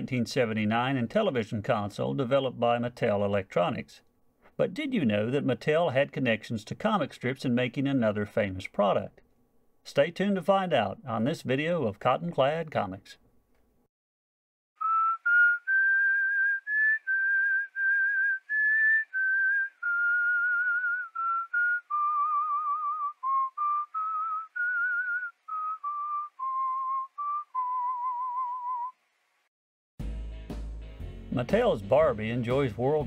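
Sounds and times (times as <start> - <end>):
person whistling a tune: 14.8 - 28.9.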